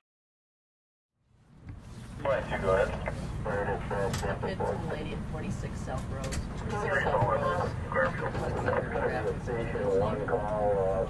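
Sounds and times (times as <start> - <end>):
steady low rumble: 1.2 - 11.0
two-way radio voices: 2.2 - 11.0.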